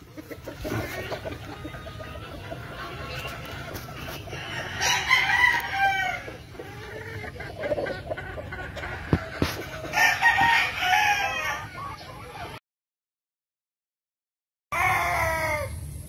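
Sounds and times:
roosters crowing: 0.0 - 12.1, 14.7 - 16.0.

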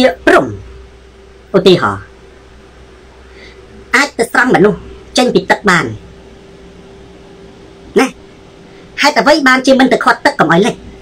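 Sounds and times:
faint background hiss: 0.0 - 11.0
thin steady hum: 0.0 - 11.0
man speaking a syllable: 4.0 - 6.0, 7.9 - 8.2.

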